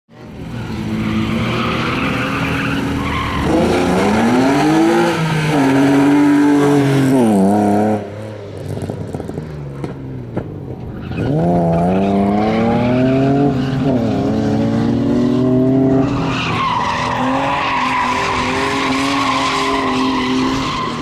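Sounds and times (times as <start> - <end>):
race car engine revving: 0.2 - 9.4.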